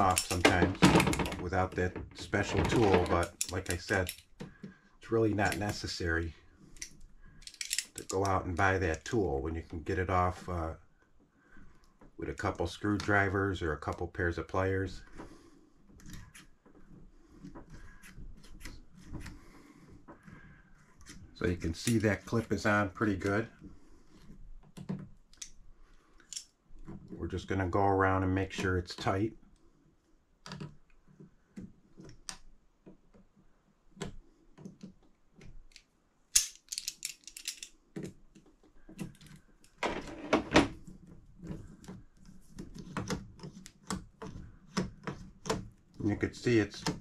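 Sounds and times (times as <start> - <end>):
metal parts clicking and tapping: 0.0 - 1.8, 2.4 - 4.5, 6.8 - 8.7, 26.2 - 26.9, 34.0 - 39.8
pliers clicking on metal clip: 6.8 - 8.4.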